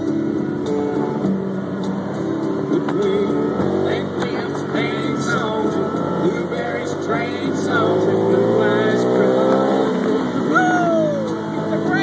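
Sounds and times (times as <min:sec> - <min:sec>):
country song on car stereo: 0:00.0 - 0:12.0
road and engine noise: 0:00.0 - 0:12.0.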